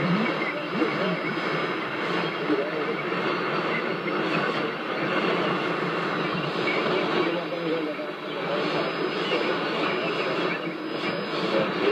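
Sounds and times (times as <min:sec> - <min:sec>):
faint radio voice: 0:00.0 - 0:11.9
radio static hiss: 0:00.0 - 0:11.9.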